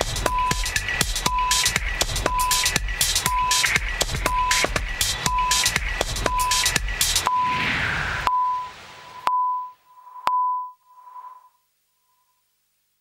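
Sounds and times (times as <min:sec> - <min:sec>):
electronic news theme music: 0:00.0 - 0:07.6
whoosh: 0:07.2 - 0:09.3.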